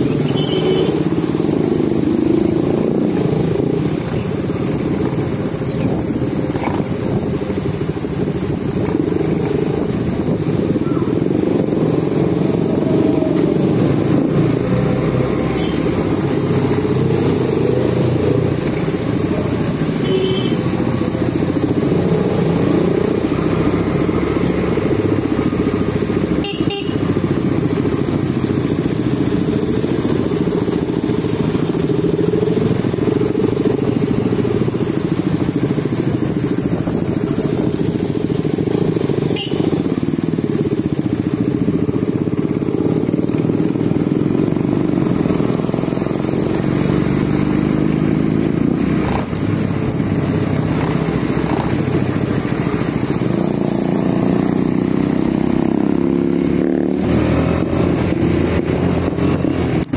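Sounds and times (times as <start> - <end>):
motorcycle engine revving: 0.0 - 59.9
other motorcycle engines: 0.0 - 59.9.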